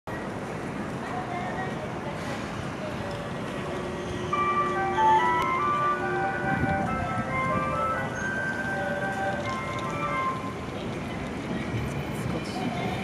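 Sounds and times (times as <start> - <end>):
traffic noise: 0.1 - 13.0
simple electronic melody: 4.3 - 10.5.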